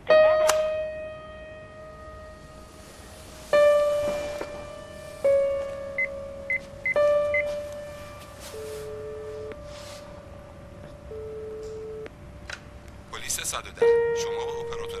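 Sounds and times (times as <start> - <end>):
sparse piano notes: 0.0 - 12.4, 13.5 - 15.0
phone ringing tone: 8.4 - 9.6, 11.0 - 12.1.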